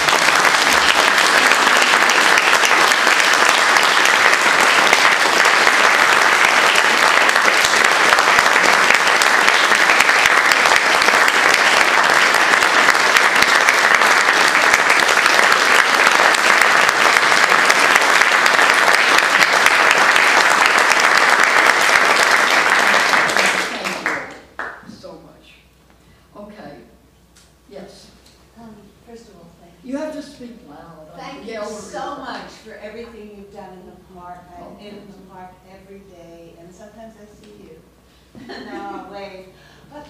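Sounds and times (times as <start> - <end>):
audience applauding: 0.0 - 24.8.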